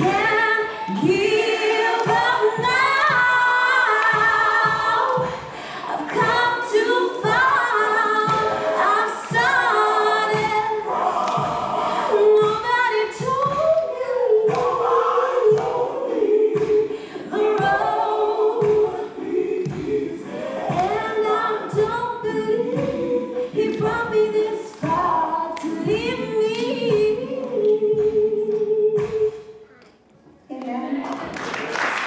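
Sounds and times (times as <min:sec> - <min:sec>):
woman singing into a microphone: 0:00.0 - 0:10.8, 0:12.1 - 0:14.8, 0:20.7 - 0:29.6.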